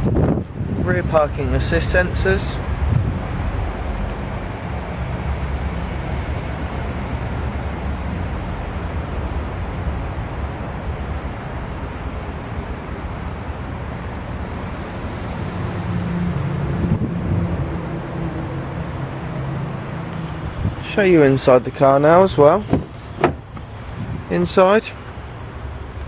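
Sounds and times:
wind buffeting microphone: 0.0s - 10.3s, 16.4s - 18.6s, 19.9s - 21.0s, 22.6s - 24.4s.

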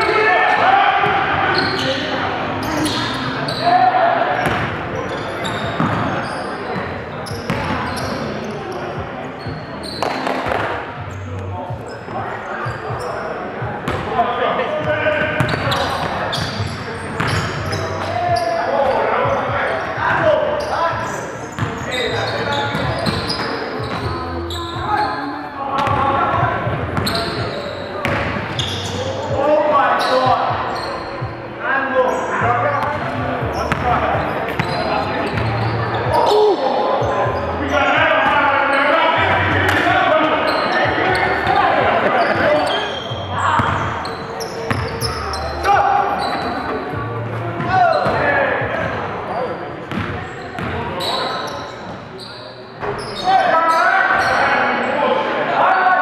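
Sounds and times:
voices echoing in gym: 0.0s - 56.0s
basketball bouncing on court: 4.4s - 4.8s, 5.5s - 6.2s, 7.3s - 8.1s, 10.0s - 10.7s, 13.8s - 14.1s, 15.2s - 17.8s, 21.6s - 21.8s, 25.8s - 26.0s, 28.0s - 28.8s, 32.8s - 35.5s, 42.2s - 45.2s, 49.9s - 50.8s.

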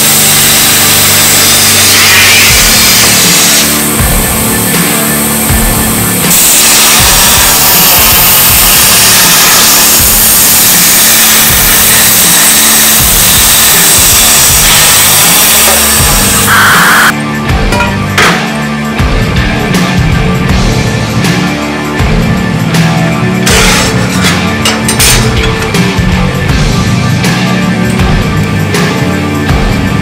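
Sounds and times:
plasma cutter hissing: 0.0s - 17.1s, 23.4s - 26.2s
background music with steady beat: 0.0s - 30.0s.

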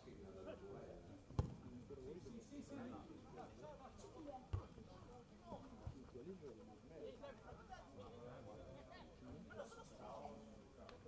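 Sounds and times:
football being kicked: 1.4s - 1.6s, 4.5s - 4.7s.

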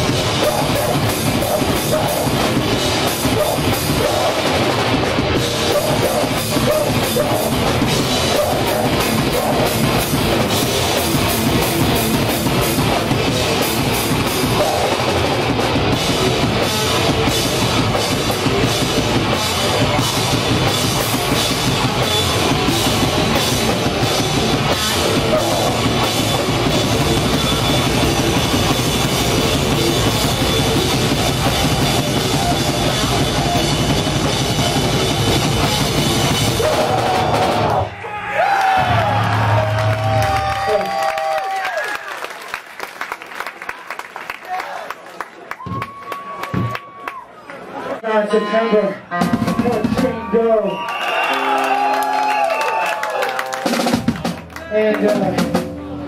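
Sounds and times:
scattered voices: 0.0s - 10.3s, 14.2s - 15.6s, 24.5s - 28.0s
guitar feedback: 0.0s - 37.8s
metal band playing live: 0.0s - 38.0s, 49.1s - 50.5s, 53.3s - 56.0s.

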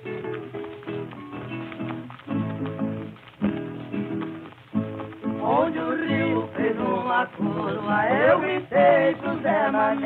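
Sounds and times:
strummed and plucked guitars: 0.0s - 10.0s
person singing: 5.4s - 10.0s.

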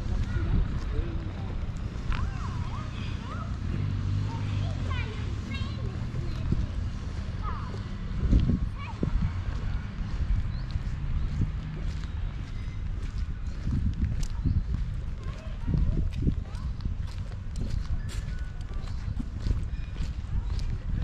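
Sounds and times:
footsteps on stone paving: 0.0s - 21.0s
wind rumble on microphone: 0.0s - 21.0s.

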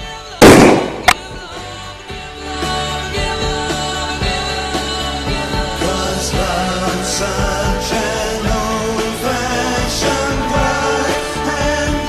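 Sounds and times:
plastic bottle bursting with bang: 0.4s - 1.5s
short sharp crack: 0.4s - 1.5s.

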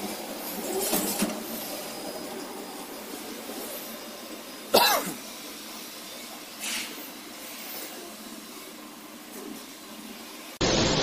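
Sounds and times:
person coughing: 4.7s - 5.2s.

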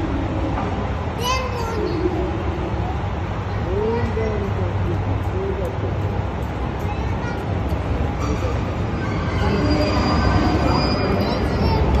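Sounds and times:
diesel train engine rumble: 0.0s - 12.0s
high wheel squeal: 8.2s - 11.9s.

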